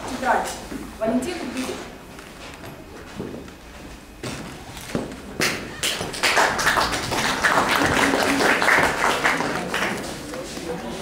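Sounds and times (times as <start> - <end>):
audience applause: 5.8 - 10.2.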